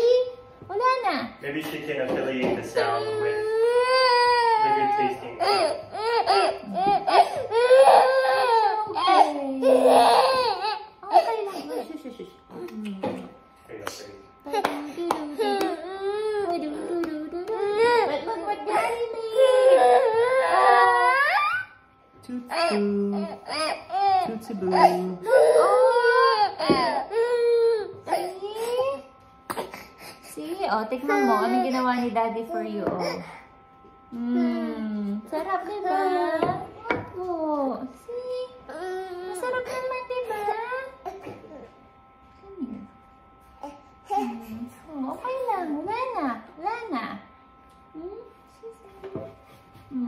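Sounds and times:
baby crying: 2.8 - 11.9, 14.5 - 21.8, 22.5 - 29.9.

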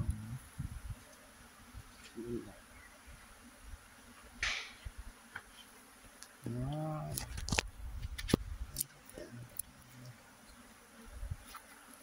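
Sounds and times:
bee swarm buzzing faintly: 0.0 - 12.0.

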